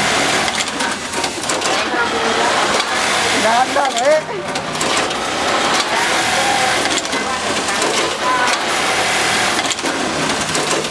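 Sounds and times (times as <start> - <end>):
sewing machine running: 0.0 - 10.9.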